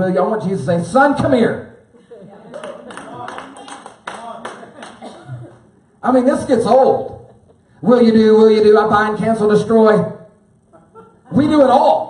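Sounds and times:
scattered handclaps: 2.6 - 5.1
person preaching: 11.3 - 12.0.

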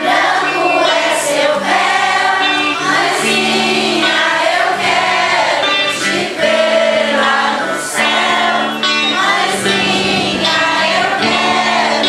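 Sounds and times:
choir singing a hymn: 0.0 - 12.0.

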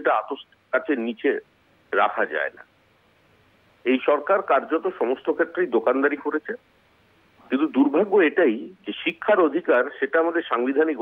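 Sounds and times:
man speaking over telephone: 0.0 - 2.6, 3.8 - 6.6, 7.5 - 11.0.

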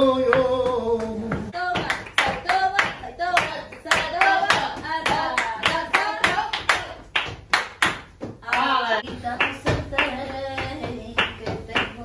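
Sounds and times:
hands clapping rhythmically: 0.3 - 12.0.

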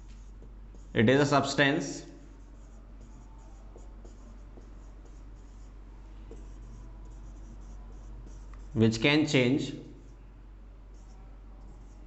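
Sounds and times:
marker writing on whiteboard: 0.0 - 8.9, 10.8 - 12.0.

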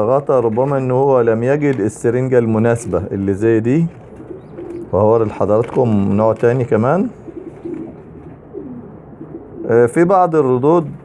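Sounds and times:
pigeons cooing softly: 0.0 - 11.0.

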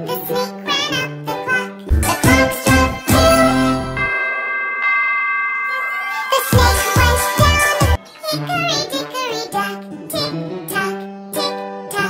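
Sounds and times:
clock bell chiming: 2.0 - 8.0.

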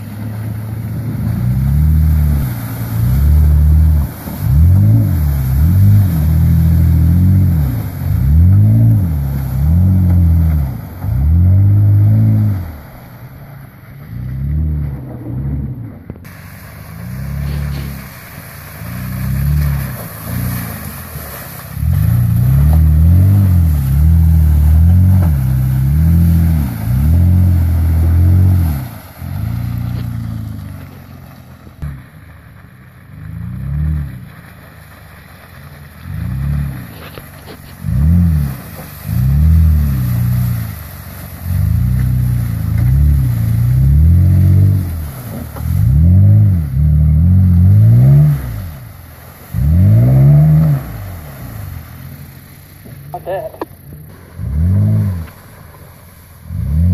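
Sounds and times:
truck engine revving: 0.0 - 56.9
tyres spinning in mud: 0.0 - 56.9.

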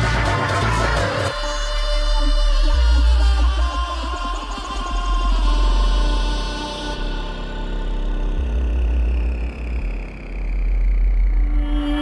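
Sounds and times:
deep sub-bass note: 0.0 - 12.0
falling synth sweep: 5.4 - 12.0.

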